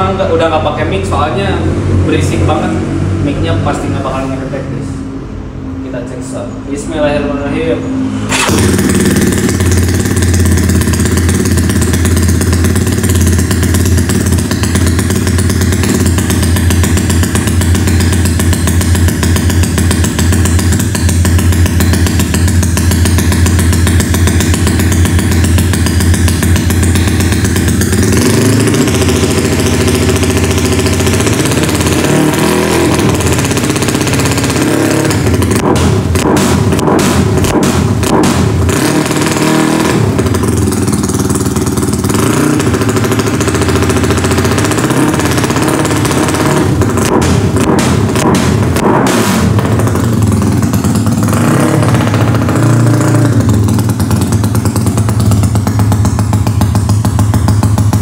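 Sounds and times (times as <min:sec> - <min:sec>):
scooter engine idling and revving: 0:00.0 - 0:58.0.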